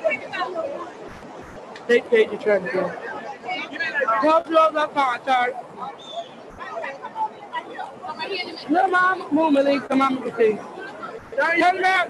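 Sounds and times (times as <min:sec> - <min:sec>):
faint background chatter: 0:00.0 - 0:12.0
people talking casually: 0:00.0 - 0:12.0.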